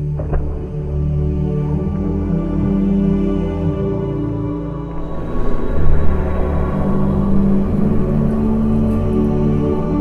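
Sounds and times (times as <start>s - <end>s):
brooding ambient film music: 0.0s - 10.0s.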